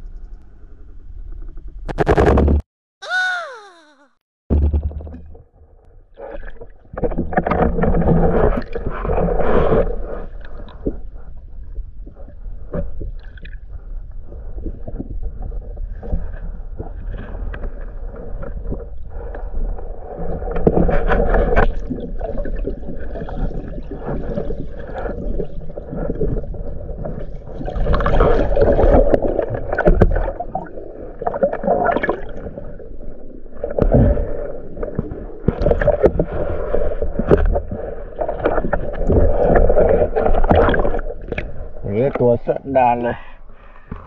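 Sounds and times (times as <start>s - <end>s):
muffled underwater sloshing: 13.7s - 44.0s.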